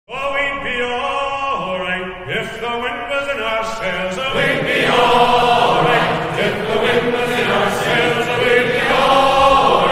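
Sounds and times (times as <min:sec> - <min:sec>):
men singing a sea shanty: 0:00.5 - 0:09.9.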